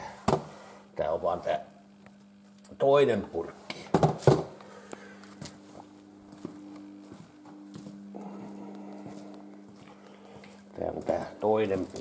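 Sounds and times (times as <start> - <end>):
low electrical hum: 0.0 - 12.0
steps on concrete floor: 4.8 - 12.0.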